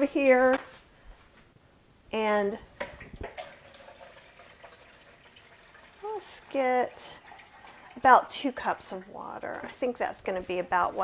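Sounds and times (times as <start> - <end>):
faucet running into sink: 2.9 - 9.1.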